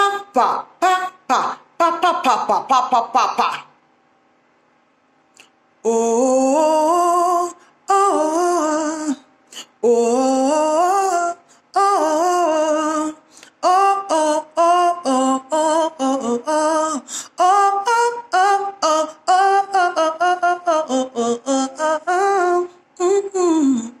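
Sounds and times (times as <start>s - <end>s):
woman singing short syllables: 0.0s - 3.7s.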